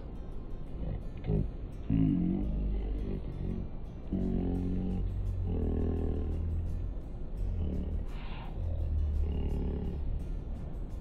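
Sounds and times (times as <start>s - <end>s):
low droning tone: 0.0s - 11.0s
low rumble of city ambience: 0.0s - 11.0s.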